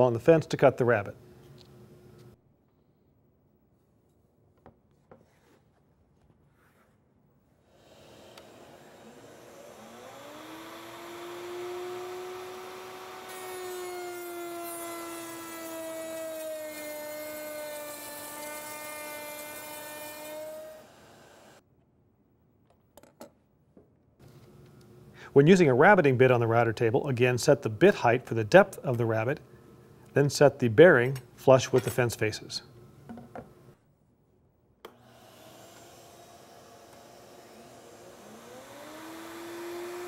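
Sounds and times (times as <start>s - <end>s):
router cutting wood hiss: 7.7s - 16.9s, 17.5s - 21.6s, 34.9s - 40.0s
router motor whining: 7.7s - 21.6s, 34.9s - 40.0s.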